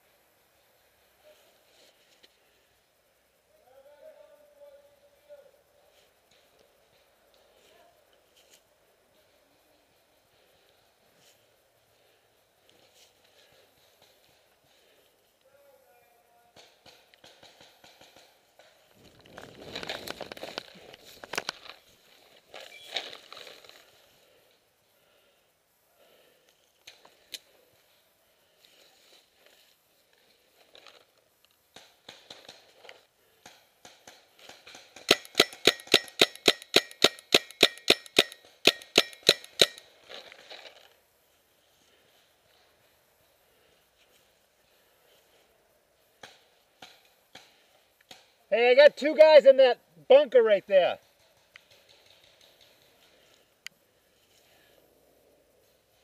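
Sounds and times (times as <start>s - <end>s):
paintball marker firing: 33.8s - 39.8s.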